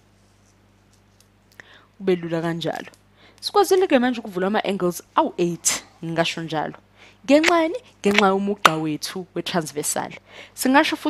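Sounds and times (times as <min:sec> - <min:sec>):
low electrical hum: 0:00.0 - 0:11.0
short breath: 0:01.6 - 0:02.0, 0:06.9 - 0:07.2, 0:10.2 - 0:10.6.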